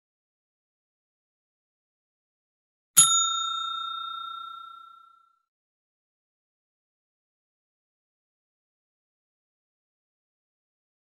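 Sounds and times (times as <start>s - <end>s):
bright bell ding: 3.0s - 5.4s.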